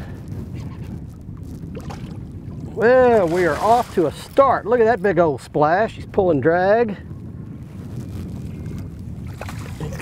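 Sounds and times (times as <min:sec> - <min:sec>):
water noise: 0:00.0 - 0:05.6, 0:08.1 - 0:10.0
wind: 0:00.0 - 0:10.0
fish splashing and thrashing: 0:03.0 - 0:04.4
small splashes: 0:03.1 - 0:04.1.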